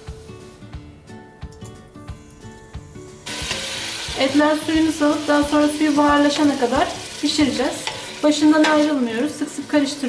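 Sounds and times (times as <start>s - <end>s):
quiet background music: 0.0s - 10.0s
meat sizzling in hot oil: 3.2s - 10.0s.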